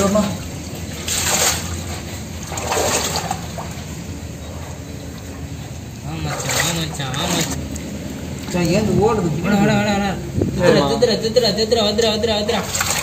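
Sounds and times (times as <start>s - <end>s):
water splashing in pipe: 0.0s - 4.0s, 5.1s - 8.9s, 12.5s - 13.0s.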